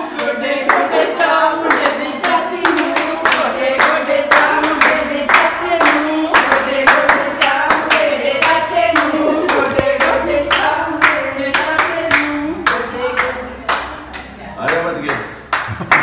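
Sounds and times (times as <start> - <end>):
group singing folk song: 0.0 - 14.4
rhythmic hand-clapping: 0.0 - 16.0.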